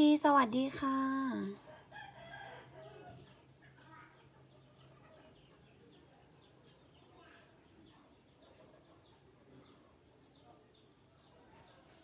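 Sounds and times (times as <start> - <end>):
woman speaking: 0.0 - 1.6.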